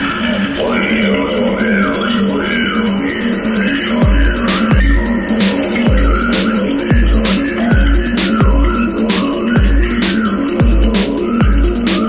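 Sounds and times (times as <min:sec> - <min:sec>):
industrial techno music: 0:00.0 - 0:12.0
deep kick drum: 0:04.0 - 0:12.0.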